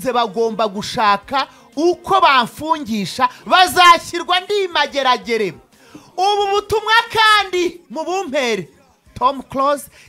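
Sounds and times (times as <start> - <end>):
rapping over music: 0.0 - 10.0.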